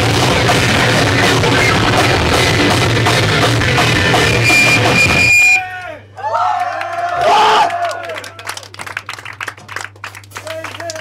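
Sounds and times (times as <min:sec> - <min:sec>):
live band heavy music: 0:00.0 - 0:05.6
held high tone: 0:04.1 - 0:05.7
audience whooping and yelling: 0:04.2 - 0:08.5.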